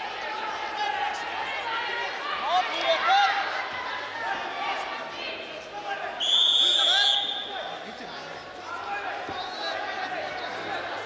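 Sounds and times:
referee's whistle: 6.2 - 7.7.

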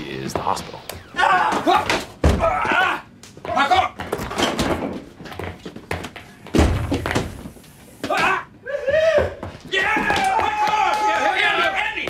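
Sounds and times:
knocks from people running: 9.1 - 11.5.

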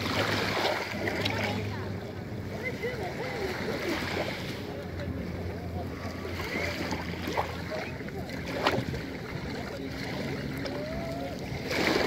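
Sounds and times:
waves lapping on pebbles: 0.0 - 1.8, 11.5 - 12.0
water splashes: 0.0 - 12.0.

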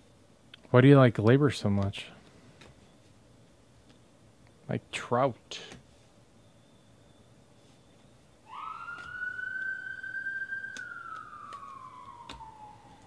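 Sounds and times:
emergency siren wailing: 8.4 - 13.0.

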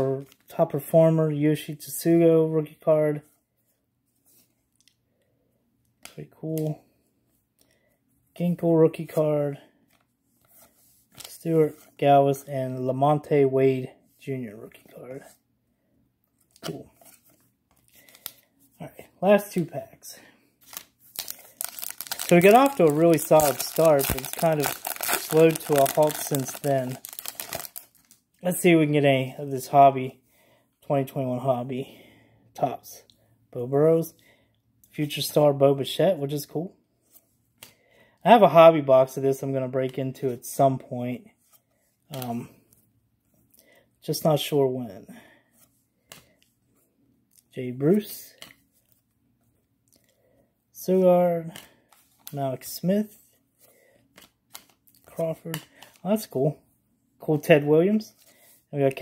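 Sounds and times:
rustling of cards: 8.5 - 12.5, 16.3 - 19.8, 20.4 - 29.0, 45.4 - 50.2, 51.4 - 56.6, 57.3 - 59.0.

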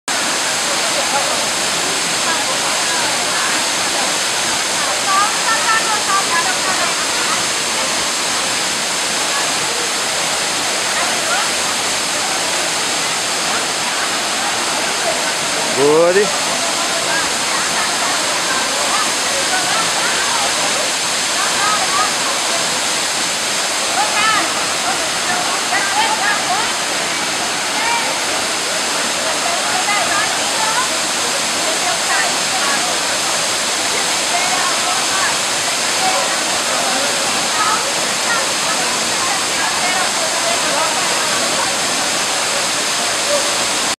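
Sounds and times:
people chattering and calling: 0.1 - 44.0
waterfall rushing: 0.1 - 44.0.

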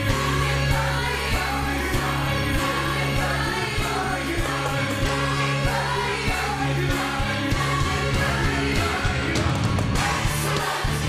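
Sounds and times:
gospel choir singing: 0.0 - 11.0
band with bass and beat: 3.5 - 11.0.

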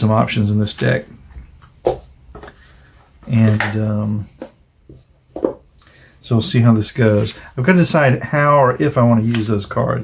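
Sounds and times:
cards rubbing and tapping: 1.6 - 4.6.

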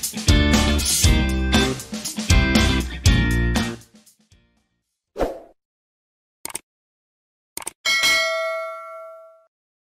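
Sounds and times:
bell-like ding: 7.9 - 9.5.

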